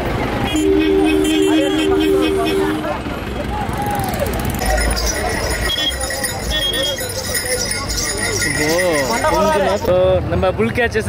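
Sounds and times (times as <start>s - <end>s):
people's voices: 0.6s - 11.0s
collar bells jingling: 4.5s - 10.0s.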